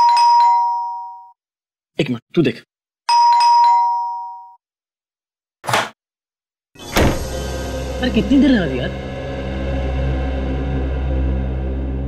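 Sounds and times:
two-tone doorbell chime: 0:00.0 - 0:01.4, 0:03.1 - 0:04.6.

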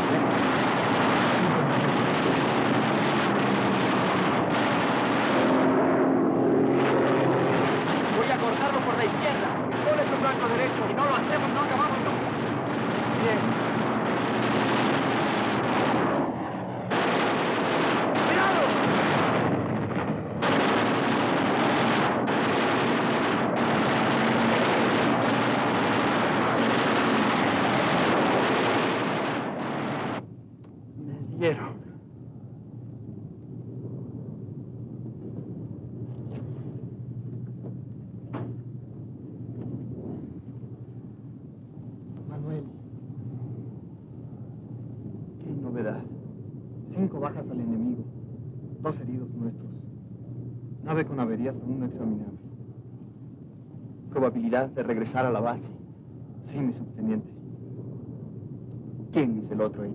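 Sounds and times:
aircraft engines running: 0:00.0 - 0:59.9
machine-gun fire: 0:16.9 - 0:30.2.

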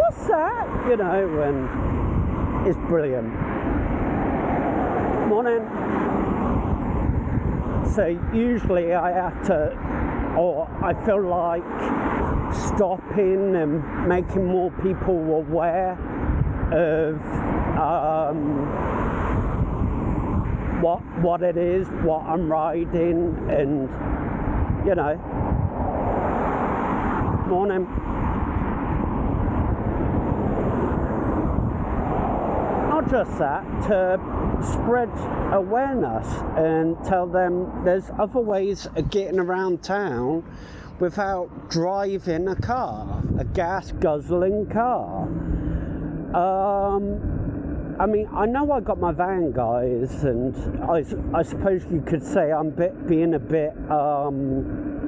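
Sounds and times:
passing car traffic: 0:00.0 - 0:55.0
wind buffeting microphone: 0:00.0 - 0:55.0.

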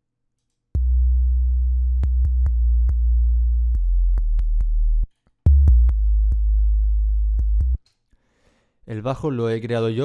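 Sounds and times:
deep sub-bass synth note: 0:00.8 - 0:07.8.

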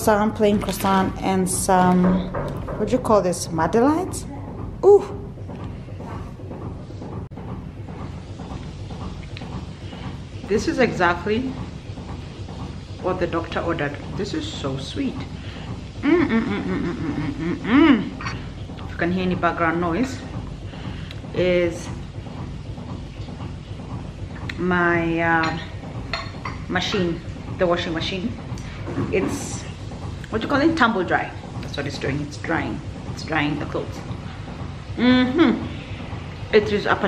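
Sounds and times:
washing machine rumbling: 0:00.0 - 0:37.0.

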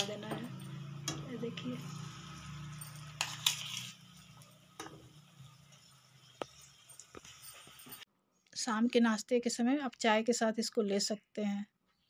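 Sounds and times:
peanuts frying in hot oil: 0:00.0 - 0:08.0.

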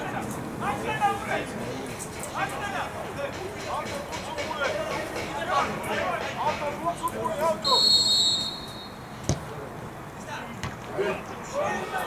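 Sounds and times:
referee's whistle blast: 0:07.6 - 0:09.2
football kick thud: 0:09.2 - 0:09.5.

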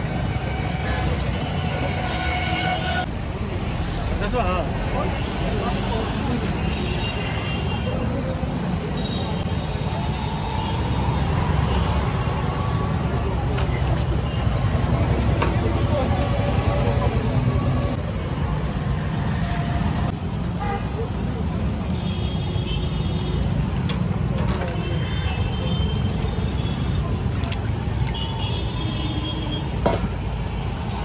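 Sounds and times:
road traffic rumble: 0:00.0 - 0:31.0.

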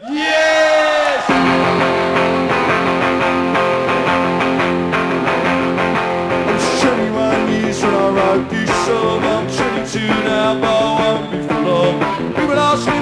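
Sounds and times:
electric guitar strumming chords: 0:01.3 - 0:13.0.

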